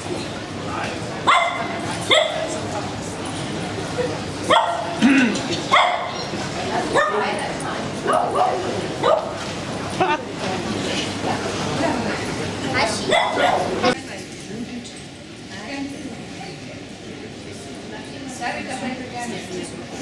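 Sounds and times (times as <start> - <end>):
people talking: 0.0 - 20.0
small dogs yapping: 1.3 - 2.6, 5.7 - 6.3, 13.1 - 13.9.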